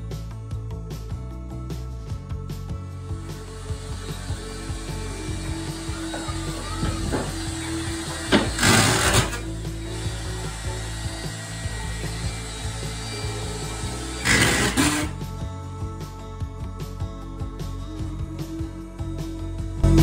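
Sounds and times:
background music: 0:00.0 - 0:20.0
cordless drill driving screw: 0:03.4 - 0:15.2.

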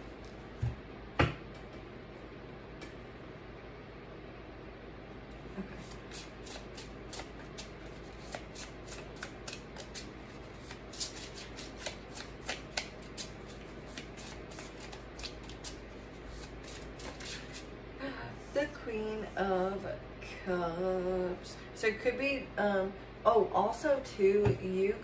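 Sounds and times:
cards being shuffled: 0:05.8 - 0:17.7.

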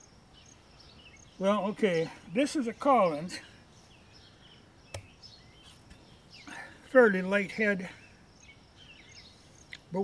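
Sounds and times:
faint bird chirps: 0:00.0 - 0:10.0.

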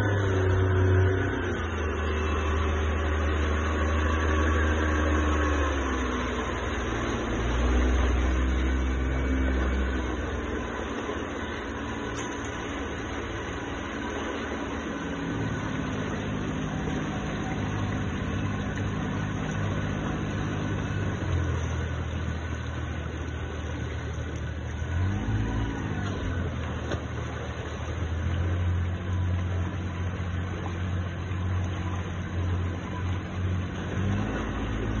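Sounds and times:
rushing water and wake: 0:00.0 - 0:35.0
speedboat engine running: 0:00.0 - 0:35.0.

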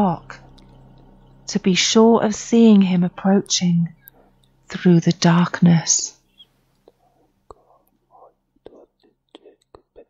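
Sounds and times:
person whispering: 0:02.6 - 0:10.0.

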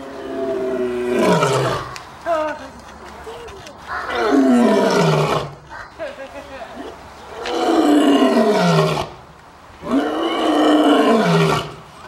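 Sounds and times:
lion roaring: 0:00.0 - 0:02.0, 0:04.1 - 0:05.6, 0:07.3 - 0:09.2, 0:09.8 - 0:11.9.

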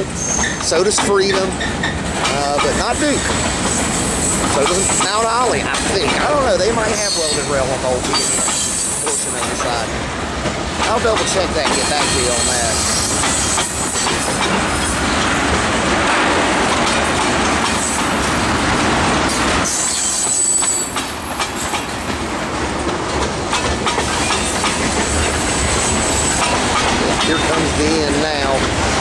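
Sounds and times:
high wheel squeal: 0:00.0 - 0:05.6, 0:06.8 - 0:09.9, 0:11.8 - 0:15.1, 0:19.6 - 0:22.0, 0:24.3 - 0:28.4
freight train wheels clicking: 0:00.0 - 0:29.0.

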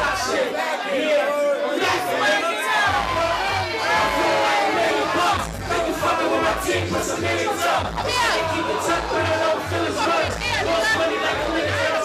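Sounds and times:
crowd shouting and chanting: 0:00.0 - 0:12.0
loud hip-hop beat: 0:02.8 - 0:12.0
person rapping into a microphone: 0:05.0 - 0:12.0.

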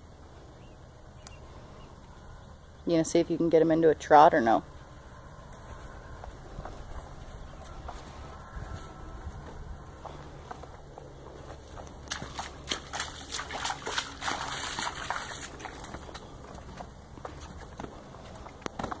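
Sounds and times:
hooves splashing through puddle: 0:05.3 - 0:19.0.

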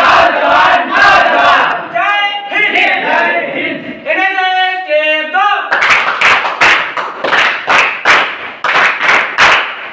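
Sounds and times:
group chanting: 0:00.0 - 0:04.1
group clapping in unison: 0:05.7 - 0:09.9.

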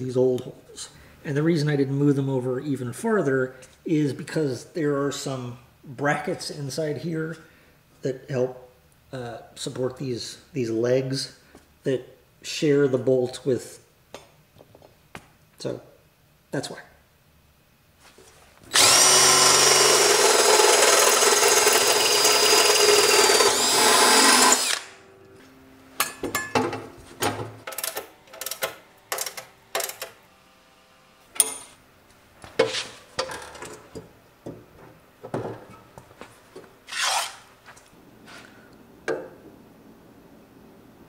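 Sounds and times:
power drill boring through steel: 0:18.7 - 0:25.0.

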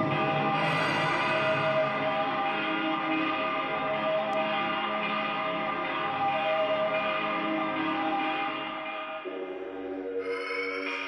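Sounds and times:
steady drone: 0:00.0 - 0:11.0
ambient bell-like tones: 0:09.3 - 0:11.0.

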